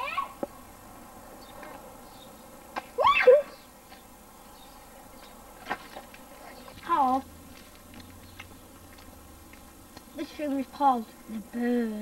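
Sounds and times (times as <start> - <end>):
child's high-pitched cry: 0.0 - 0.4, 3.0 - 3.6
faint outdoor background: 0.0 - 12.0.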